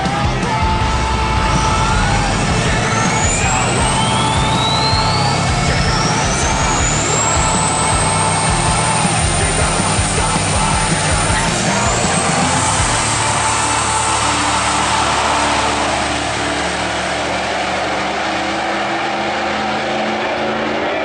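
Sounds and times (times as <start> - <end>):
diesel truck engine accelerating: 0.0 - 21.0.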